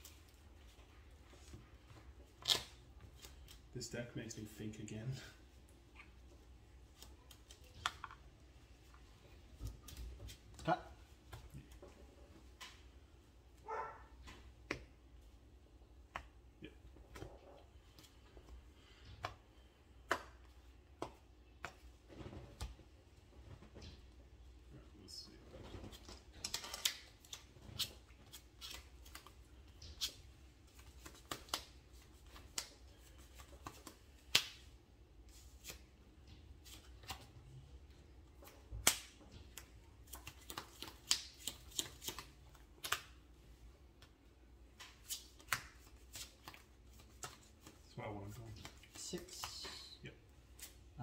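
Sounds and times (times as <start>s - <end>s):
trading cards clicking and snapping: 2.3s - 3.6s, 25.9s - 34.7s, 38.4s - 43.2s, 44.8s - 47.8s.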